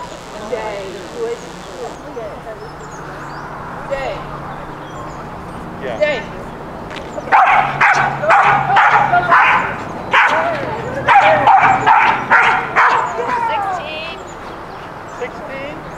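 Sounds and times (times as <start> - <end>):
dog barking: 7.3 - 13.6.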